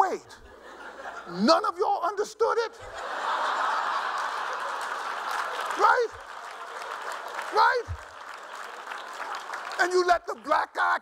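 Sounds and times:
man's voice: 0.0s - 0.4s, 1.3s - 2.8s, 5.7s - 6.2s, 7.5s - 8.0s, 9.8s - 11.0s
audience applauding: 3.0s - 11.0s.

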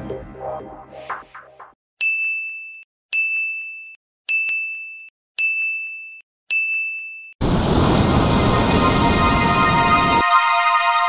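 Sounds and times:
loud dense burst of sound: 7.4s - 10.2s.

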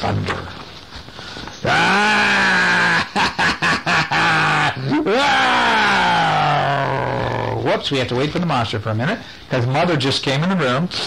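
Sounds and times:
man's theatrical monster laughter: 1.6s - 6.2s
man's monster roar falling in pitch: 1.6s - 7.7s.

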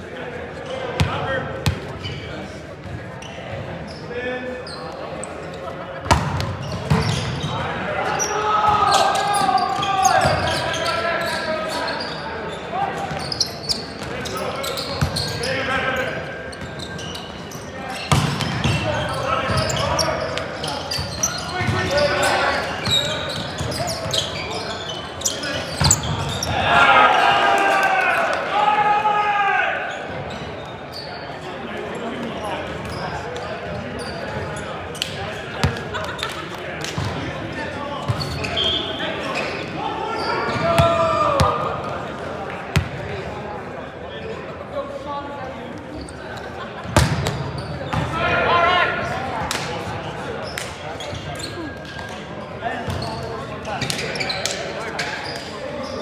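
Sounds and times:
players shouting: 7.0s - 16.2s, 18.7s - 30.0s, 38.3s - 42.1s, 48.0s - 49.4s.

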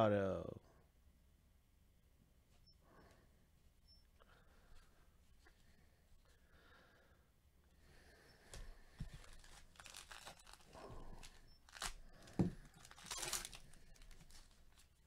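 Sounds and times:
foil pack tearing and crinkling: 9.2s - 15.0s.

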